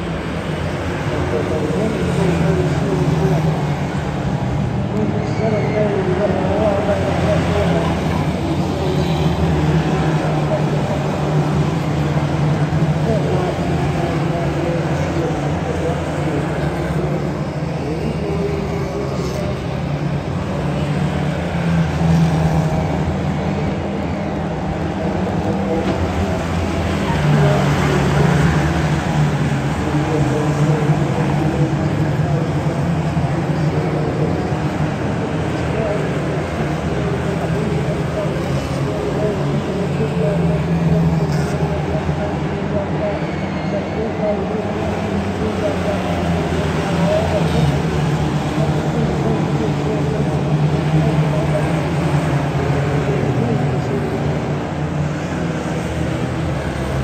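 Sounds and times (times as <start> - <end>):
racing car engines: 0.0 - 57.0.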